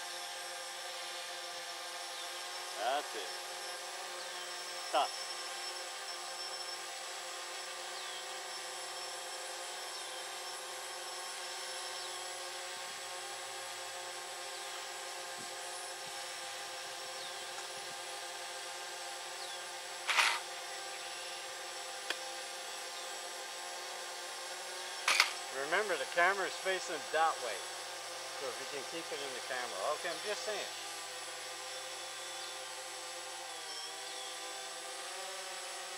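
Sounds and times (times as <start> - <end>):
quadcopter propellers whining: 0.0 - 35.9.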